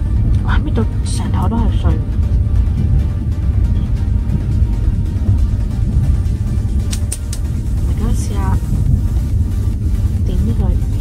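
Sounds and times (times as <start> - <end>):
train rumbling: 0.0 - 11.0.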